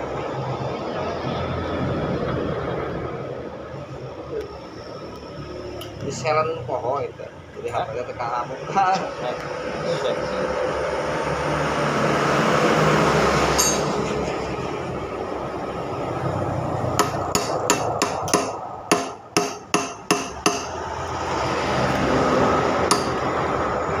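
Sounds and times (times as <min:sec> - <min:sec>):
steady background noise: 0:00.0 - 0:24.0
hammer striking metal: 0:13.5 - 0:14.3, 0:17.0 - 0:20.8, 0:22.8 - 0:23.4.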